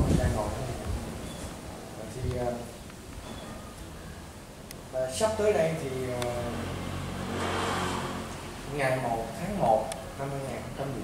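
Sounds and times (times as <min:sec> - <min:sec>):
vehicle engine passing: 0:05.3 - 0:09.3.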